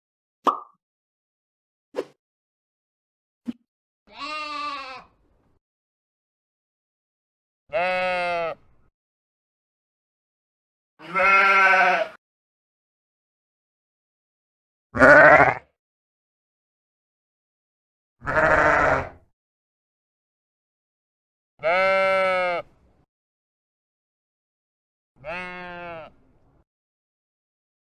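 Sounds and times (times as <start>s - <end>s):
sheep baa: 4.1s - 5.1s, 7.7s - 8.6s, 11.0s - 12.2s, 15.0s - 15.7s, 18.2s - 19.2s, 21.6s - 22.7s, 25.2s - 26.2s.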